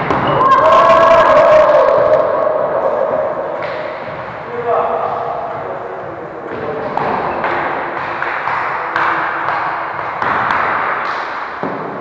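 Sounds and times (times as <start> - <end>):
echoing sports hall noise: 0.0 - 12.0
volleyball hit slaps: 8.0 - 12.0.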